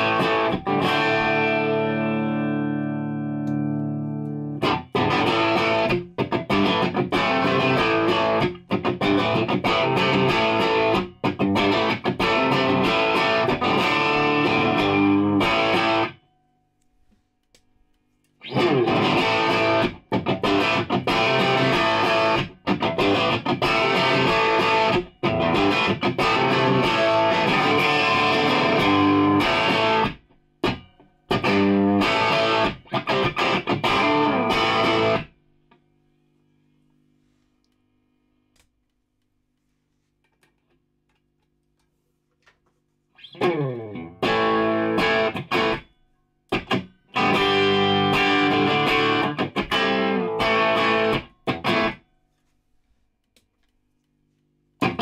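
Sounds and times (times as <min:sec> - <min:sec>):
distorted electric guitar riffs: 0:00.0 - 0:16.2, 0:18.4 - 0:35.4, 0:43.2 - 0:45.9, 0:46.5 - 0:52.0, 0:54.8 - 0:55.0.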